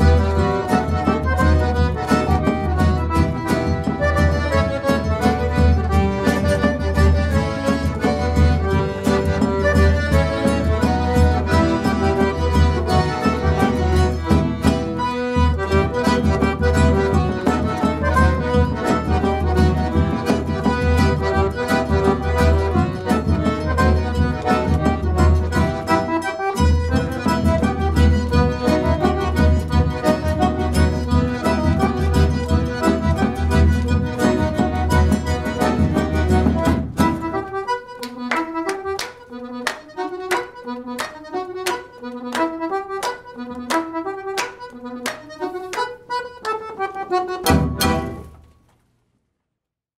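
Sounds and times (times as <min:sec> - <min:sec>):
hands clapping in time: 0:00.0 - 0:48.3
accordions playing: 0:00.0 - 0:48.7.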